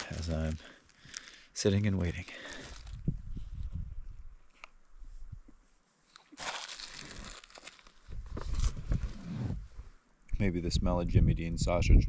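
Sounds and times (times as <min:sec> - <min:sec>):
wrapper crinkling: 0:00.0 - 0:01.4, 0:02.1 - 0:03.0, 0:06.1 - 0:08.7.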